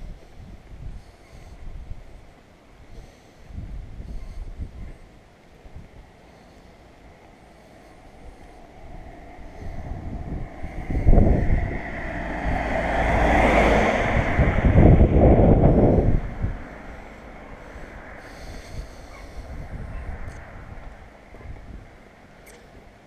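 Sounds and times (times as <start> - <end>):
car passing by: 7.3 - 22.3.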